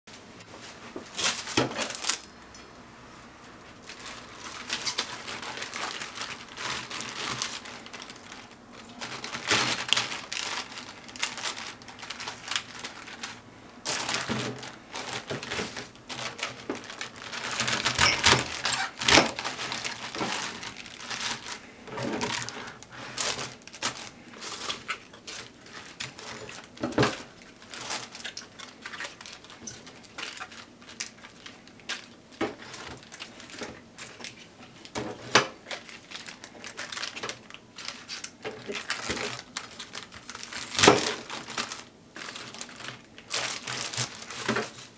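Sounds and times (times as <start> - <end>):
cabbage leaves rustling: 3.7 - 35.0, 35.6 - 44.9.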